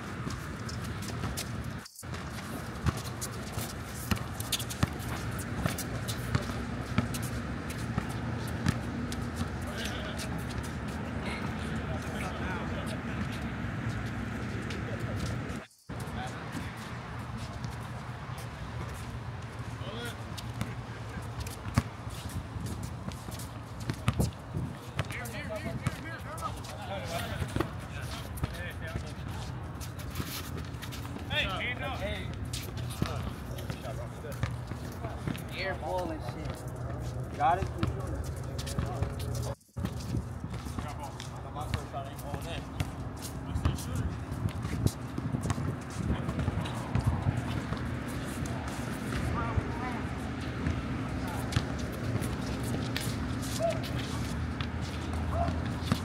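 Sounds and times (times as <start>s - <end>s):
players' voices and calls: 0.8s - 56.0s.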